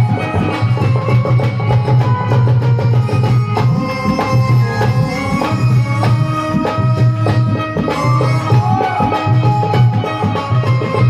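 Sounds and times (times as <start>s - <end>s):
driving drum beat: 0.0s - 11.0s.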